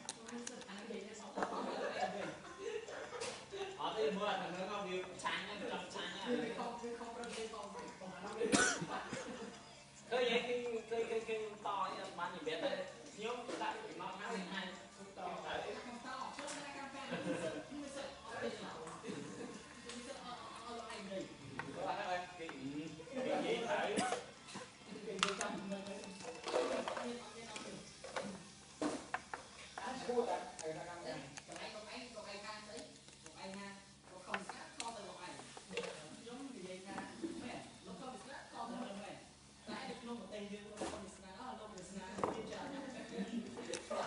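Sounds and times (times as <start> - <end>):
person coughing: 8.4 - 9.3, 24.0 - 24.2.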